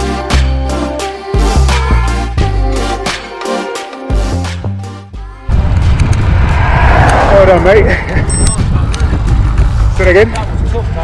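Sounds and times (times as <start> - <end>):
backing music: 0.0 - 6.2
wind rumble on microphone: 5.5 - 11.0.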